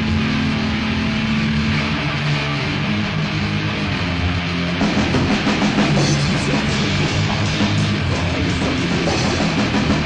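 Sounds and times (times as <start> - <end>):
death metal instrumental: 0.0 - 10.0.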